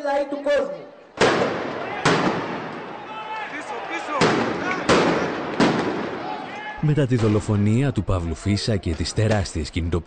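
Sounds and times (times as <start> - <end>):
loud explosive bangs: 1.2 - 3.0, 4.1 - 7.8.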